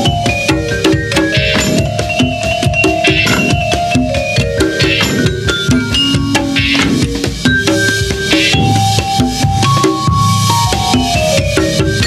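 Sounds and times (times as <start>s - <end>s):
drum kit and hand percussion: 0.0s - 12.0s
keyboard and bass notes: 0.0s - 12.0s.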